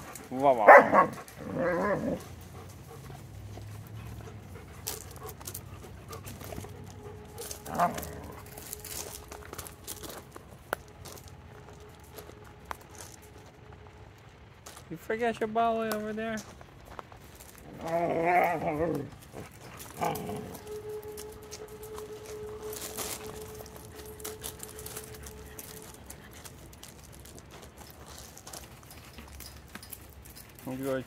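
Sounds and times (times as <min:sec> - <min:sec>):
dogs barking: 0:00.0 - 0:10.2, 0:17.6 - 0:27.4.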